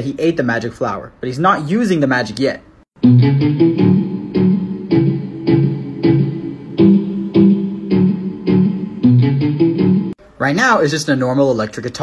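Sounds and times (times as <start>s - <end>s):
electric guitar short rhythmic notes: 3.0s - 10.2s.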